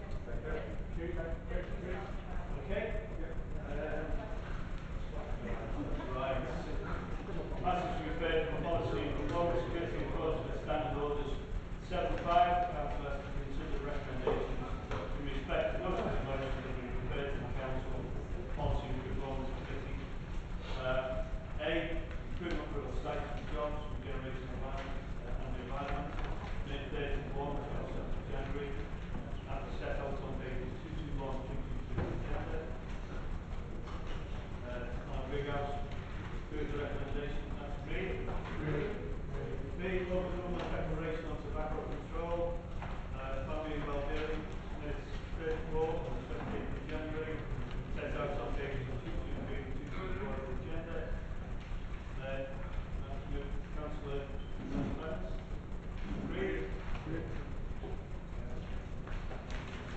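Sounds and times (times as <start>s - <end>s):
low rumble of system noise: 0.0s - 59.9s
steady low hum: 0.0s - 59.9s.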